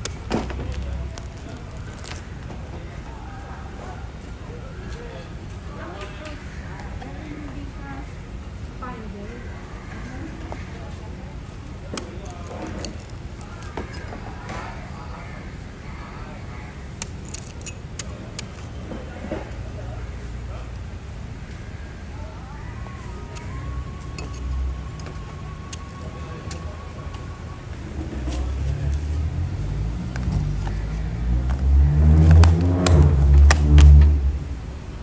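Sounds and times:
vehicle engine rumbling: 0:00.0 - 0:05.9, 0:08.2 - 0:35.0.

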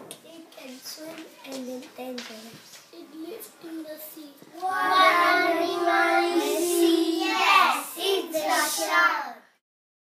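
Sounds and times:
young children singing in unison: 0:04.4 - 0:09.6.

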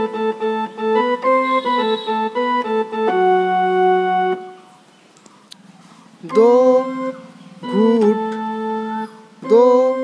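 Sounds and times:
electronic keyboard sustained note: 0:00.0 - 0:04.8, 0:06.2 - 0:10.0.

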